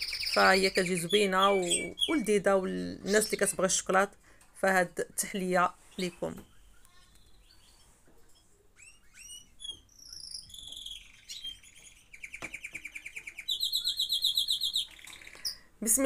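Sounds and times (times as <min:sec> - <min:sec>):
fast bird trills: 0:00.0 - 0:02.3, 0:08.8 - 0:15.6
songbirds chirping: 0:00.0 - 0:16.0.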